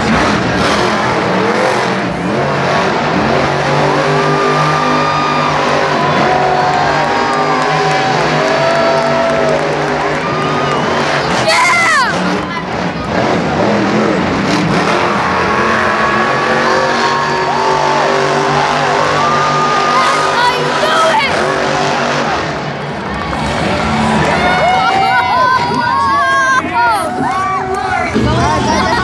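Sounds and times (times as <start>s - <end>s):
monster truck engines running: 0.0s - 29.0s
people yelling and whooping: 3.8s - 13.3s, 14.6s - 21.8s, 22.8s - 29.0s.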